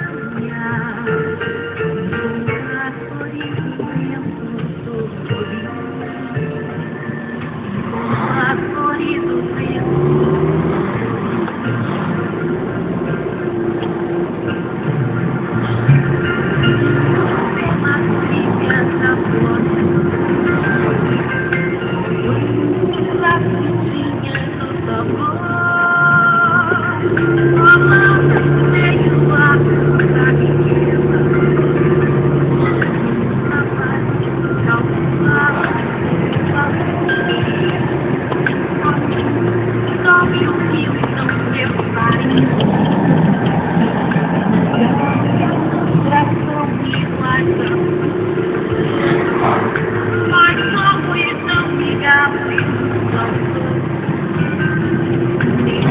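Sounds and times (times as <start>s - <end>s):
car engine running: 0.0s - 55.9s
road noise: 0.0s - 55.9s.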